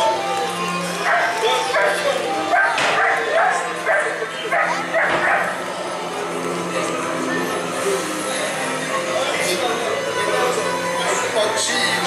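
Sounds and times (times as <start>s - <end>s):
background music: 0.0s - 12.0s
dog barking: 1.1s - 5.6s.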